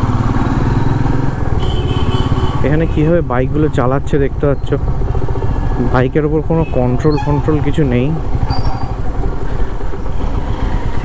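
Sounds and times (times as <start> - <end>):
motorcycle engine low rumble: 0.0 - 11.0.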